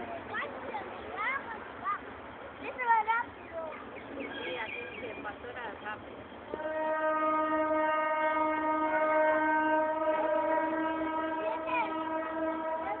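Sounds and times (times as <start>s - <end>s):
locomotive horn blast: 6.3s - 13.0s.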